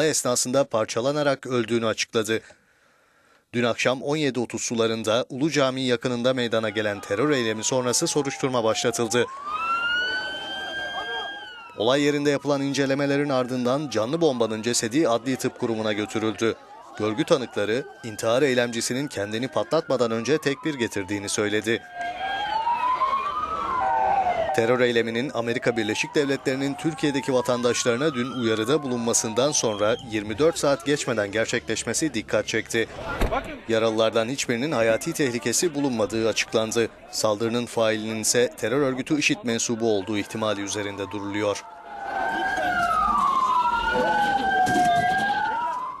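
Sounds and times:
low traffic noise: 6.0s - 46.0s
police sirens wailing: 6.1s - 46.0s
crowd murmuring: 6.6s - 24.8s, 25.5s - 45.9s.

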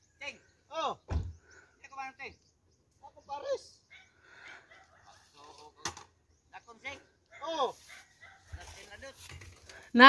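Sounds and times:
truck door slamming: 1.1s - 1.4s.

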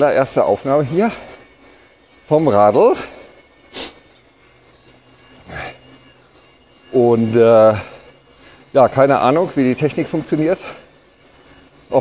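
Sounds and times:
faint steady hum: 0.0s - 12.0s
man breathing: 1.1s - 2.3s, 3.0s - 4.5s, 7.8s - 8.7s, 10.6s - 11.9s.

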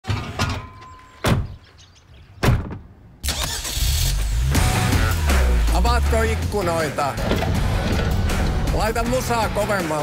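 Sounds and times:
car engine starting and rumbling: 3.2s - 9.0s.

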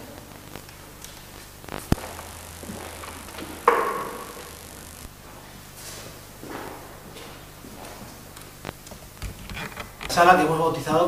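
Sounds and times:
low hum: 0.0s - 10.0s
knock on stone: 3.6s - 4.2s.

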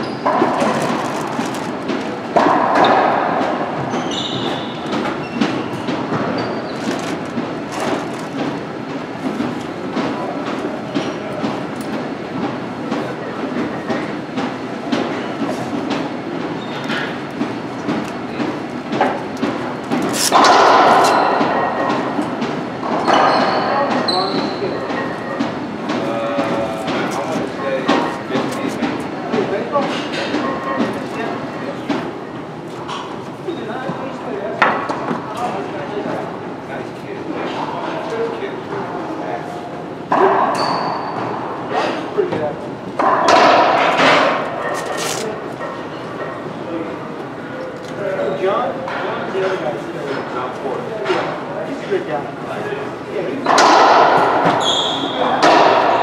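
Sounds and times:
ball and racquet impacts: 0.0s - 8.6s, 18.9s - 25.1s, 53.4s - 56.0s.

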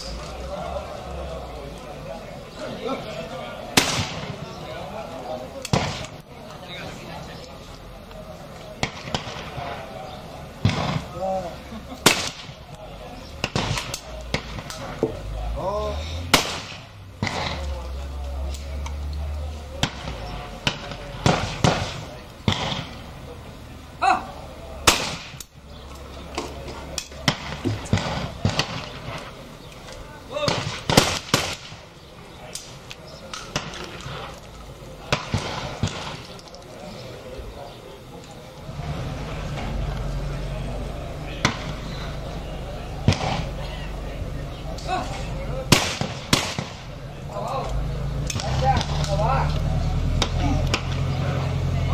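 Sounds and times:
faint distant gunshots: 3.7s - 5.0s, 5.6s - 6.2s, 8.7s - 12.8s, 13.4s - 15.4s, 16.2s - 18.2s, 19.7s - 23.1s, 24.8s - 25.5s, 26.4s - 29.5s, 30.3s - 32.5s, 33.3s - 34.4s, 35.0s - 36.4s, 41.3s - 43.9s, 45.5s - 47.0s
shotgun shots: 3.8s - 4.5s, 5.6s - 6.2s, 8.8s - 10.0s, 10.6s - 11.2s, 12.0s - 12.6s, 13.4s - 15.0s, 16.3s - 17.7s, 19.8s - 23.0s, 24.8s - 25.4s, 27.2s - 29.3s, 30.4s - 31.9s, 33.4s - 34.3s, 35.0s - 36.3s, 43.0s - 43.6s, 45.7s - 47.0s.

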